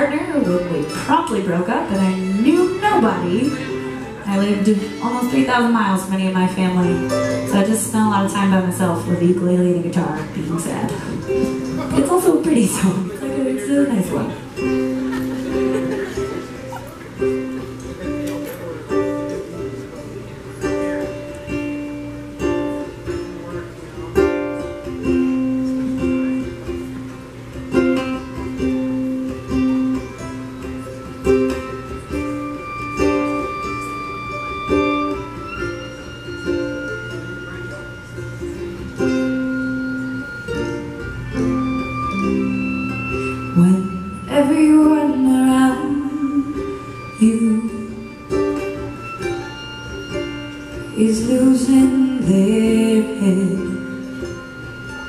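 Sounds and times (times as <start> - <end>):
acoustic string band playing: 0.0 - 55.0
plucked ukulele: 0.0 - 55.0.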